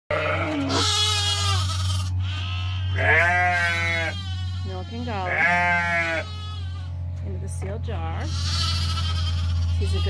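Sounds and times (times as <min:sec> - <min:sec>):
lambs bleating: 0:00.1 - 0:07.0, 0:08.0 - 0:10.0.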